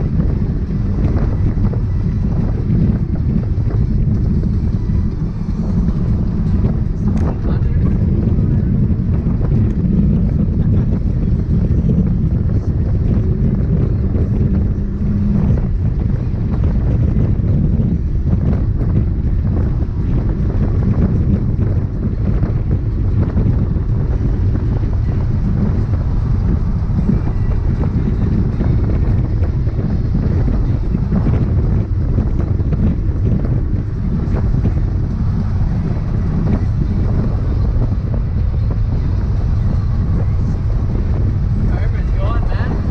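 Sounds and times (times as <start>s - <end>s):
car engine running under load: 0.0s - 42.9s
road and wind noise: 0.0s - 42.9s.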